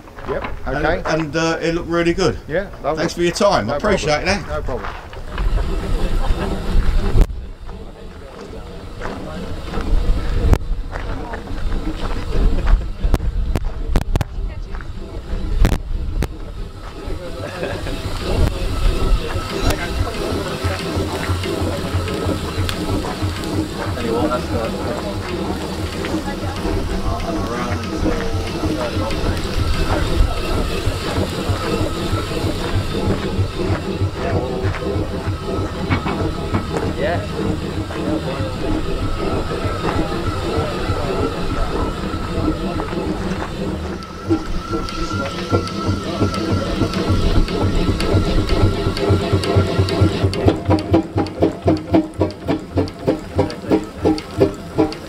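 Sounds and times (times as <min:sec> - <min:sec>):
steam engine beat: 0:00.0 - 0:55.0
steam hissing: 0:00.0 - 0:55.0
voices: 0:00.0 - 0:55.0
thin high tone: 0:15.1 - 0:51.7.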